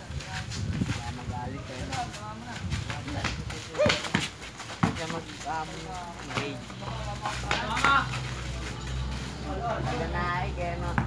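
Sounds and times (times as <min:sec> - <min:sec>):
basketball bouncing on concrete: 0:02.9 - 0:06.7, 0:10.8 - 0:11.0.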